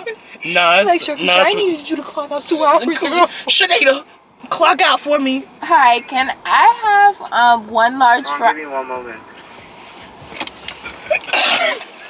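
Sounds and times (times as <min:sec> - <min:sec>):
faint low car rumble: 0:00.0 - 0:12.0.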